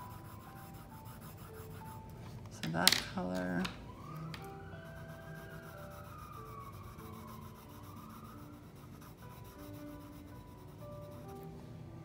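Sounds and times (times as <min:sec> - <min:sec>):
colored pencil rubbing on paper: 0:00.0 - 0:02.1, 0:04.8 - 0:11.5
soft background music: 0:00.0 - 0:12.0.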